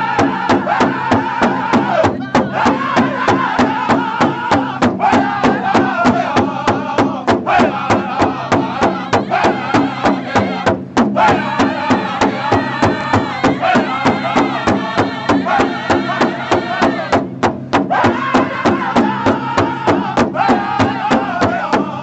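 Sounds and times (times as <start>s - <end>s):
bass drum steady beat: 0.0s - 22.0s
men singing chant in unison: 0.0s - 22.0s.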